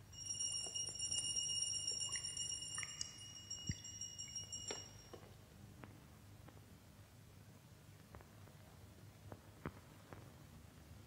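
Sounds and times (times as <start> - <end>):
bell ringing: 0.0 - 5.3.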